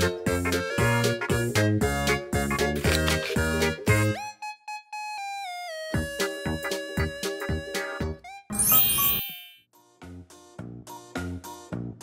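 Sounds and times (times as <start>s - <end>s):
background music: 0.0s - 12.0s
sparkling chime twinkle: 8.5s - 9.6s.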